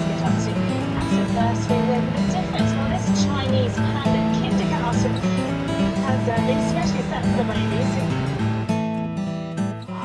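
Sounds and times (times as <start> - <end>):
music with voice: 0.0 - 10.0.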